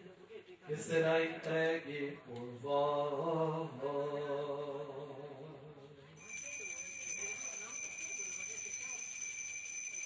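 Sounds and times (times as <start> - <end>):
altar bell ringing: 6.2 - 10.0.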